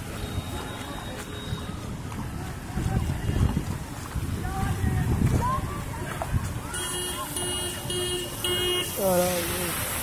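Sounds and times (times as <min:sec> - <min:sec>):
wind buffeting microphone: 0:00.0 - 0:07.4.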